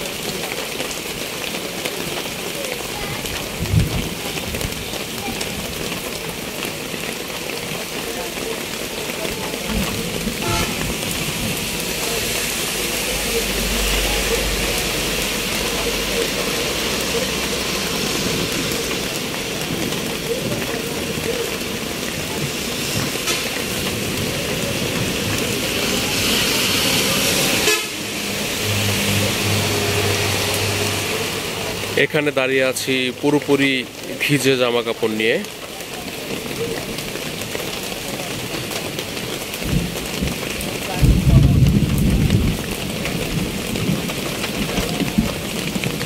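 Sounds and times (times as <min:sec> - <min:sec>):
vehicles passing: 0:00.0 - 0:41.3
rain hiss: 0:00.0 - 0:46.0
car horns tooting: 0:10.4 - 0:11.0, 0:23.2 - 0:23.8, 0:27.5 - 0:31.5
low engine drone: 0:11.9 - 0:19.0, 0:28.0 - 0:32.0.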